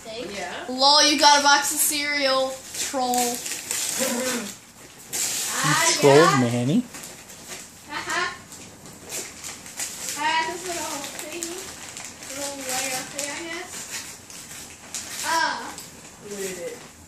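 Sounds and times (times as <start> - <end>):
wrapping paper crinkling and tearing: 1.2 - 17.0.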